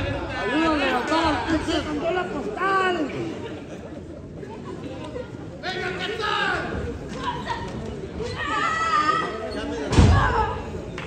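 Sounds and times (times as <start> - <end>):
people shouting and calling out: 0.0 - 3.5, 5.6 - 10.9
crowd chatter: 0.0 - 11.0.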